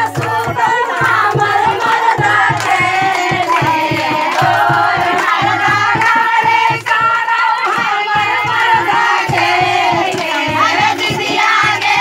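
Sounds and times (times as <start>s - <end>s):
steady percussion beat: 0.0s - 12.0s
women singing folk song: 0.0s - 12.0s.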